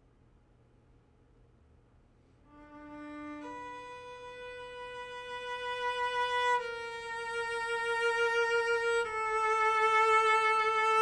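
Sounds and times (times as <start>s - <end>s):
cello bowed notes: 2.5s - 11.0s.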